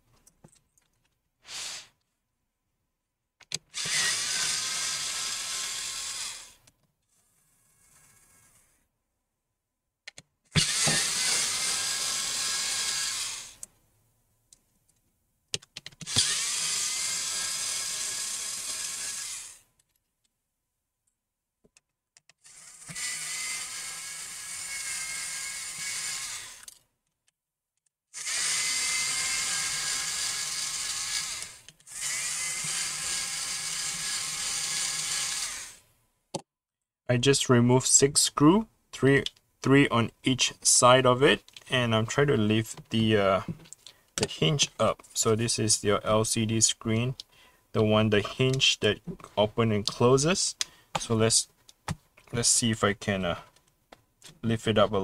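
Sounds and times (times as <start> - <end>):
electric screwdriver whirring: 3.7 - 6.6, 10.6 - 13.6, 16.0 - 19.6, 22.4 - 26.8, 28.2 - 35.8.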